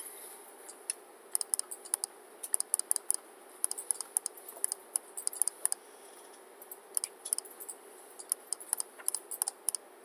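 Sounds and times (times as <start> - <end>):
computer keyboard typing: 1.3 - 5.8, 6.9 - 9.8.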